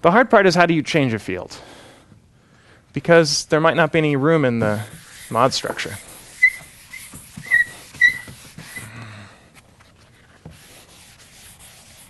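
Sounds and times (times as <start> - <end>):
eraser rubbing on blackboard: 4.6 - 8.9, 10.4 - 12.0
short high squeaks: 6.2 - 8.9.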